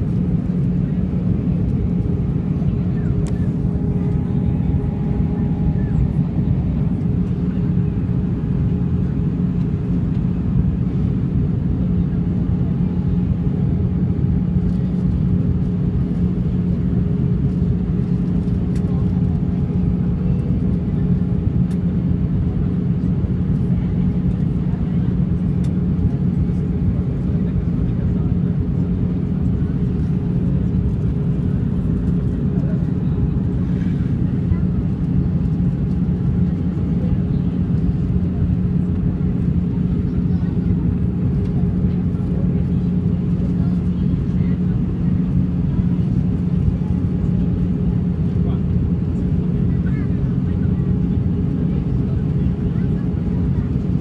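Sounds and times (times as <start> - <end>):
aircraft cabin engine rumble: 0.0 - 54.0
constant low hum: 0.0 - 54.0.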